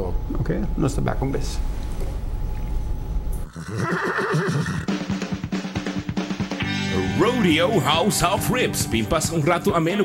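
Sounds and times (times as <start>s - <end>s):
horse whinnying: 3.5s - 5.0s
music with drums: 4.8s - 10.0s.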